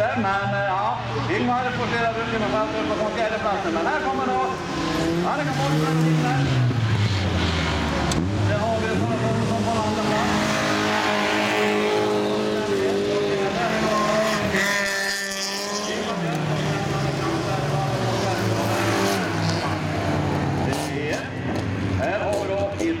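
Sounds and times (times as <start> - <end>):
racing car engines: 0.0 - 23.0.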